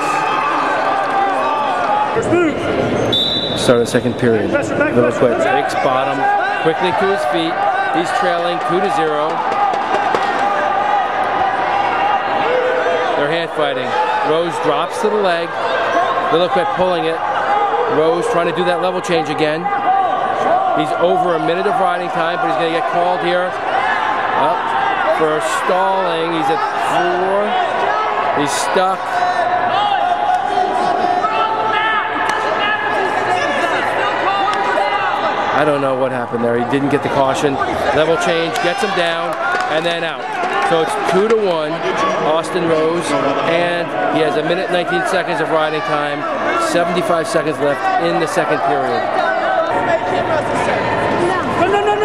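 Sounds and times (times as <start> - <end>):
arena ambience: 0.0 - 52.0.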